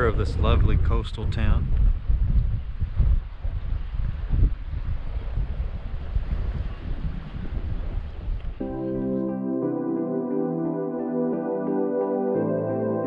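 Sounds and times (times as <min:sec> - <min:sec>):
wind buffeting microphone: 0:00.0 - 0:08.6
soft ambient keyboard music: 0:08.6 - 0:13.0.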